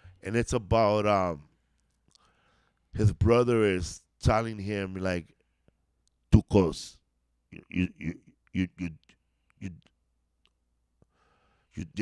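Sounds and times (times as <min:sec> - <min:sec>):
man speaking: 0:00.2 - 0:01.5, 0:03.0 - 0:05.3, 0:06.3 - 0:09.9, 0:11.8 - 0:12.0.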